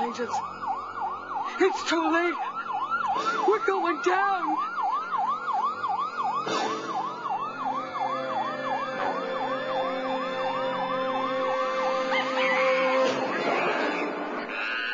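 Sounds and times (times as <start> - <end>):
gliding siren tone: 0.0 - 14.2
police sirens yelping: 0.0 - 14.9.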